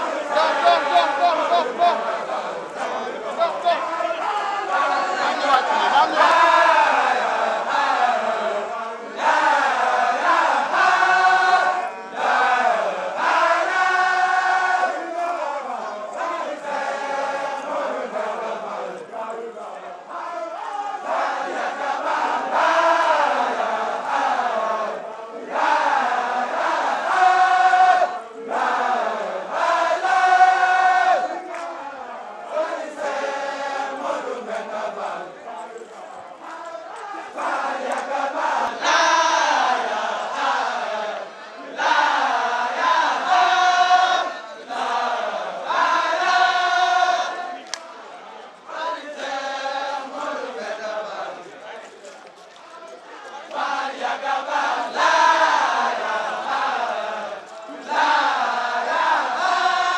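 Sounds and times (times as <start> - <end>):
male voices chanting: 0.0 - 59.9.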